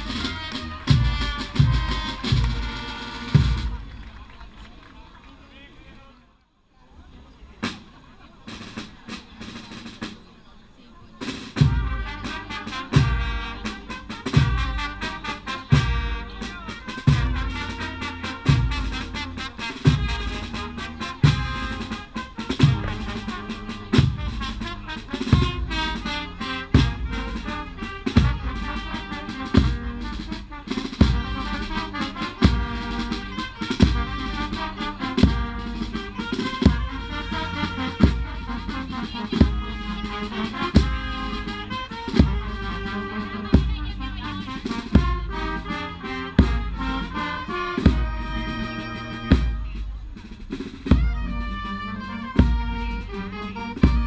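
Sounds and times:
sustained brass chords: 0.0s - 4.0s, 11.6s - 54.0s
heavy bass drum beat: 0.0s - 4.1s, 11.3s - 54.0s
snare drums: 0.0s - 5.3s, 7.5s - 54.0s
marching band playing slow march: 0.0s - 6.2s, 6.8s - 54.0s.

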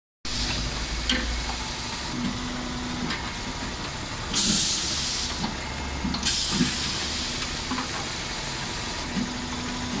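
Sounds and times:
tile press machine drone: 0.3s - 10.0s.

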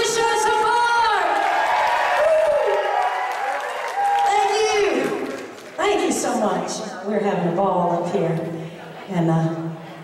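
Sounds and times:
crowd noise in a hall: 0.0s - 10.0s.

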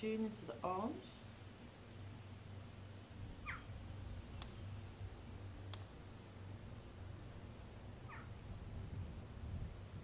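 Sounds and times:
low steady hum: 0.0s - 10.0s
faint animal call: 3.4s - 3.7s, 8.0s - 8.4s.

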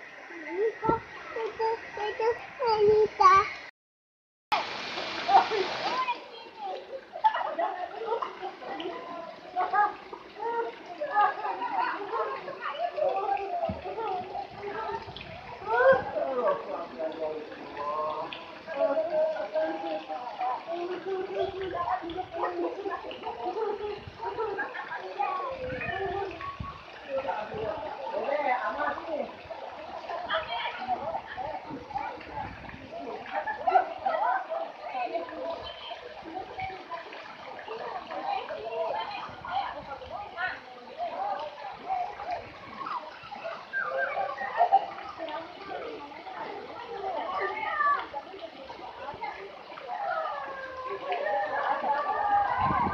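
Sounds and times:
children calling and chattering: 0.0s - 3.7s, 5.0s - 52.9s
pool water rushing: 0.0s - 3.7s, 4.5s - 52.9s.

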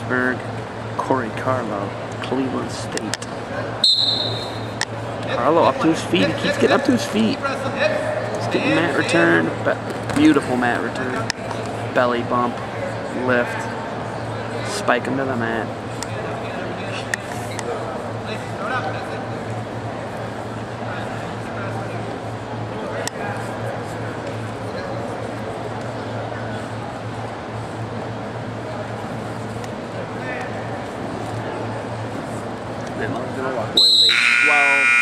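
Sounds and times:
crowd voices and shouts: 0.0s - 35.0s.

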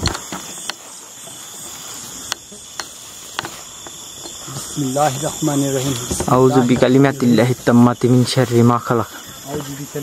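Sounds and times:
crickets and insects trilling: 0.0s - 10.0s.

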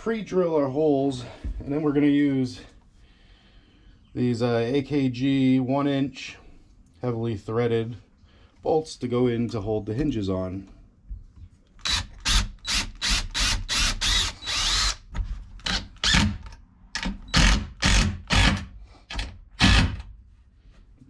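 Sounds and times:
cordless drill drilling: 11.8s - 20.0s.

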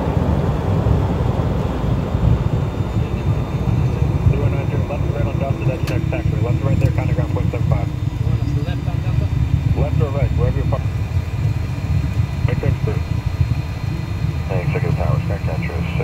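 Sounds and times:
jet rolling on runway rumble: 0.0s - 16.0s.

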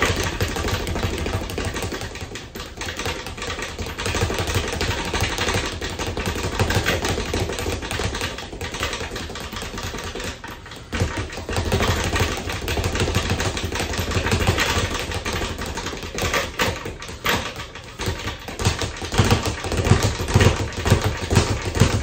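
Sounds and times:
speed bag rattling: 0.0s - 22.0s.

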